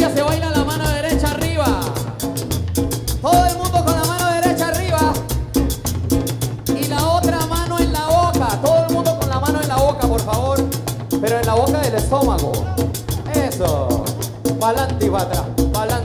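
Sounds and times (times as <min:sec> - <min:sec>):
tropical dance band playing: 0:00.0 - 0:16.0.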